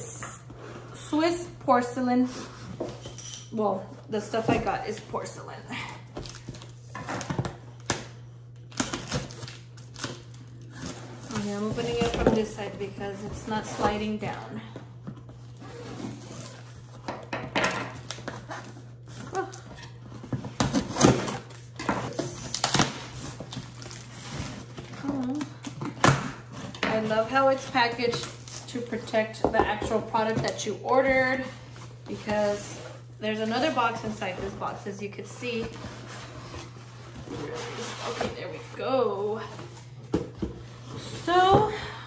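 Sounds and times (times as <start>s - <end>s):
cardboard scraping: 31.0s - 41.4s.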